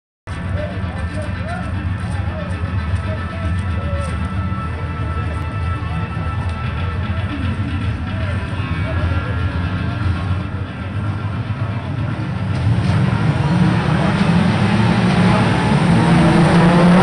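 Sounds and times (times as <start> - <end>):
heavy bass: 0.3 - 17.0.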